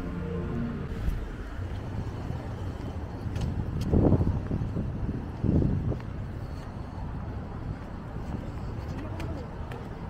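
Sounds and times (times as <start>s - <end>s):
street noise rumble: 0.0s - 10.0s
wind buffeting microphone: 0.8s - 10.0s.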